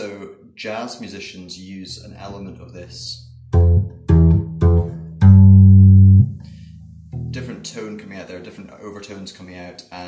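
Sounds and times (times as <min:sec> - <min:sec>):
plucked upright bass note: 0:03.1 - 0:07.6.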